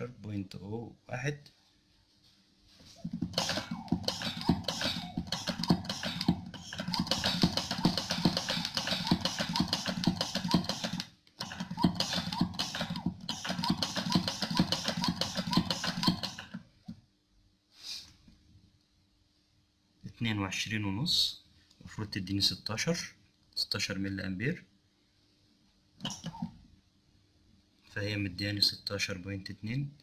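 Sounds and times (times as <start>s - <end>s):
hand pump strokes: 3.2s - 16.6s.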